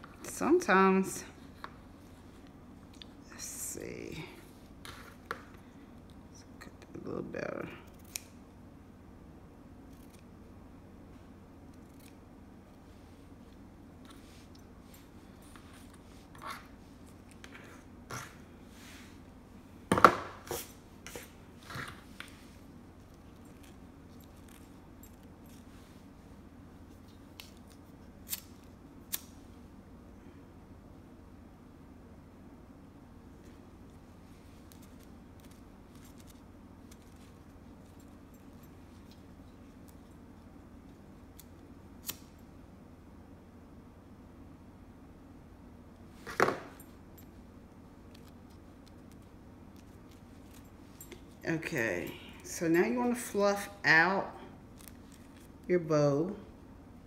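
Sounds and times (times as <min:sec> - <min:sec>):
ribbon rustling: 0:34.2 - 0:41.7, 0:54.6 - 0:55.7.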